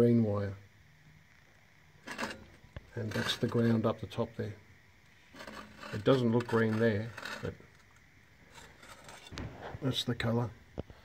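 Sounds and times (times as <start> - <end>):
speech: 0.0 - 0.6, 2.9 - 4.6, 5.9 - 7.6, 9.8 - 10.6.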